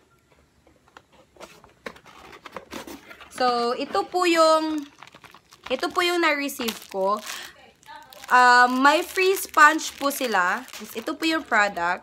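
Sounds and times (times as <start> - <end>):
cardboard box handling: 0.8 - 5.4.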